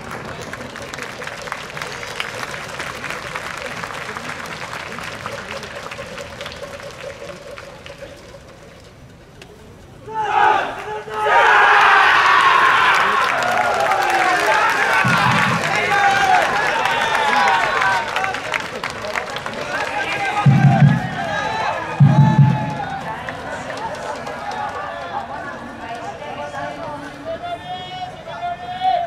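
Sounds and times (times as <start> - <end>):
crowd shouting and cheering: 10.0 - 29.0
players shouting in unison: 10.1 - 18.0, 20.0 - 23.3
announcer voice echoing: 15.0 - 16.4, 20.2 - 23.6.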